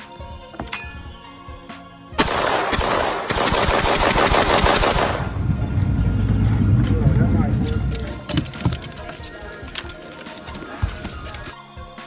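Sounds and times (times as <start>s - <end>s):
rifle firing rapid shots: 2.2s - 5.4s
low rumbling: 5.0s - 10.0s.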